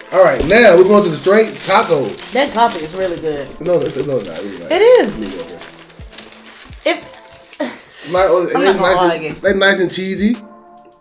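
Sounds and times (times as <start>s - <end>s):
paper wrapper rustling: 0.2s - 8.4s.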